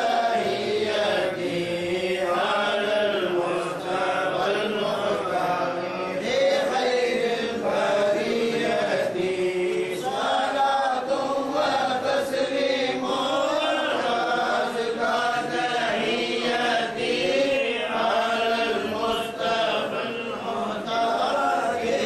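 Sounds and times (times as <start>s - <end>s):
men chanting together: 0.0s - 22.0s.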